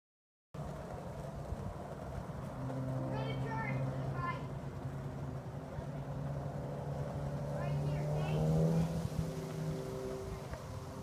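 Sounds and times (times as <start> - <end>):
child's voice: 3.1 - 4.5, 7.6 - 8.9.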